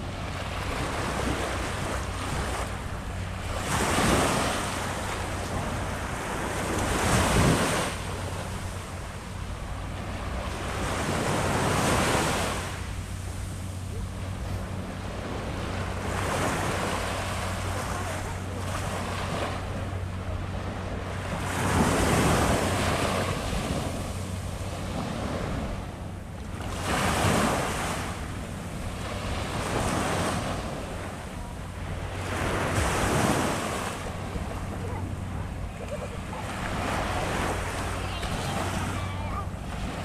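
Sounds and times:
small waves on sandy beach: 0:00.0 - 0:40.0.

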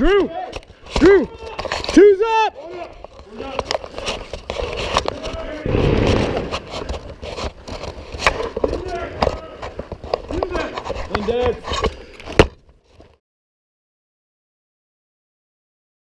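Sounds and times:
heavy rubbing on microphone: 0:03.9 - 0:12.0.

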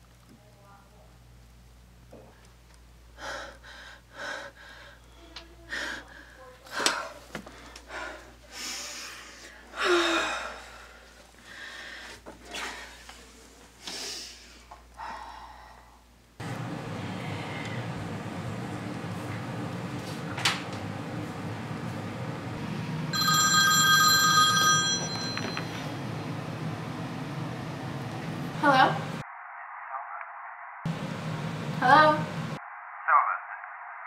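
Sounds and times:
girl gasping: 0:09.7 - 0:10.9
mobile phone ringtone: 0:23.1 - 0:25.9.

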